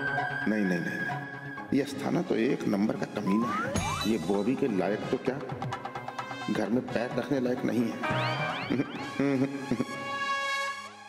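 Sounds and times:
comic music with pitch glides: 0.0s - 5.4s, 7.4s - 11.0s.

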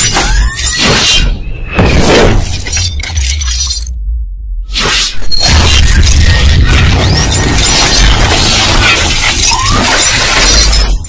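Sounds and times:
deep bass rumble: 2.4s - 4.7s
crashing impact with glass shatter: 5.4s - 11.0s.

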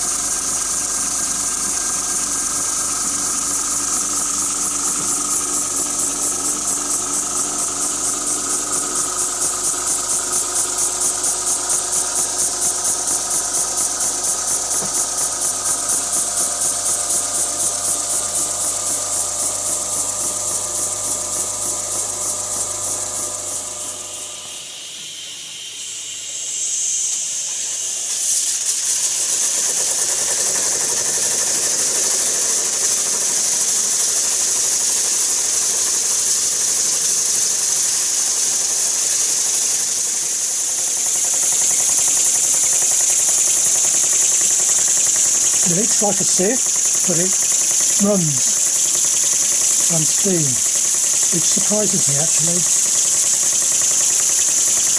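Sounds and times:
model steam engine running: 0.0s - 54.9s.

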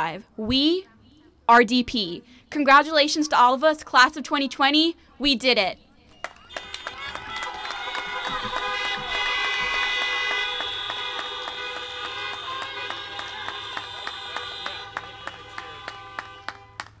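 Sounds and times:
car horns holding long tones: 6.5s - 17.0s
short repeated car honks: 6.5s - 17.0s.

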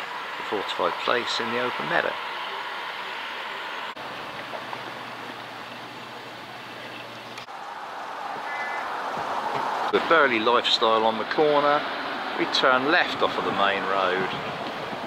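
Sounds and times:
steady rushing hiss: 0.0s - 15.0s.

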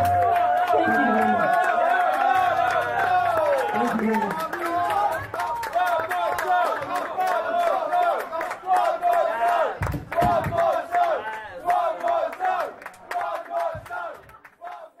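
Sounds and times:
audience cheering and shouting: 0.0s - 12.3s
scattered clapping: 0.0s - 15.0s.

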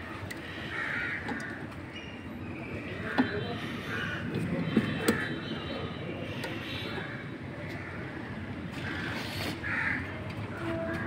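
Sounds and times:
crow cawing: 0.4s - 1.6s, 3.6s - 4.2s, 6.4s - 11.0s.

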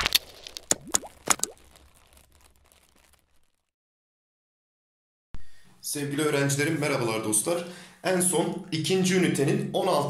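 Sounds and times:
swooping pops: 0.0s - 3.4s.

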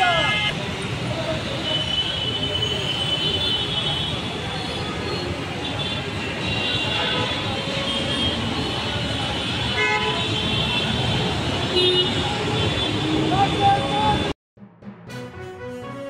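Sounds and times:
road traffic: 0.0s - 14.4s.

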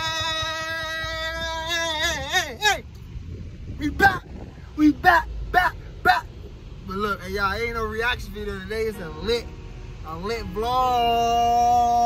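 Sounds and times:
man yelling: 0.0s - 2.9s, 3.8s - 6.3s
low car cabin rumble: 0.0s - 12.0s.

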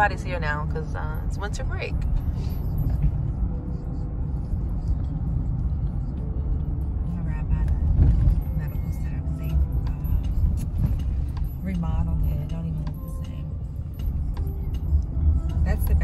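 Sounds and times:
road and engine rumble in car: 0.0s - 16.0s.

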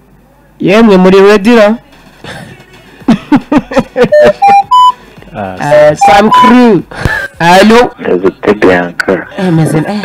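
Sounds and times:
electronic chirping blips: 4.1s - 4.9s, 5.6s - 6.7s
rising electronic beeps: 4.1s - 5.0s, 5.6s - 6.8s.

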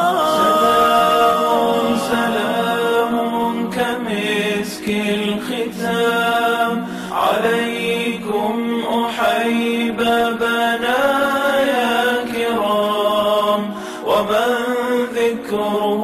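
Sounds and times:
low drone: 0.0s - 9.9s
person chanting devotional song: 0.0s - 16.0s.

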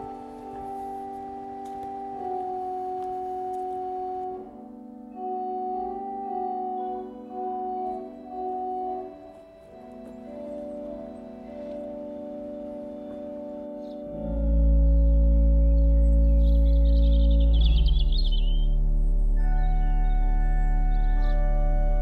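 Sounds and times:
pipe organ playing slow chords: 0.0s - 22.0s.

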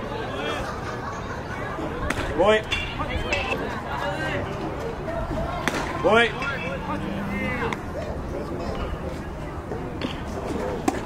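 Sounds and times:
faint voices: 0.0s - 11.0s
baseball smacking into mitt: 5.6s - 6.0s.

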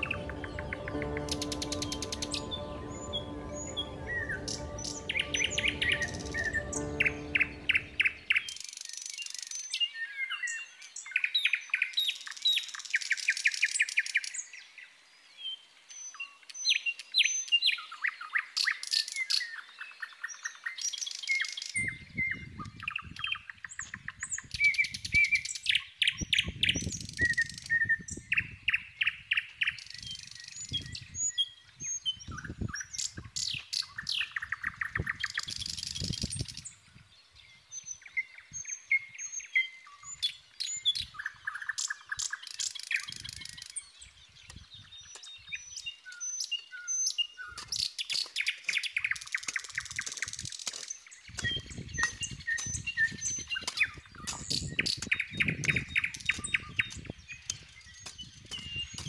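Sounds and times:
small birds chirping: 23.9s - 59.0s.

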